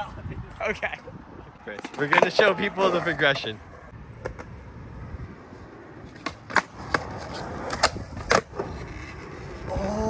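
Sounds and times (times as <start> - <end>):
skateboard rolling on concrete: 0.0 - 10.0
skateboard clacks: 1.7 - 3.4.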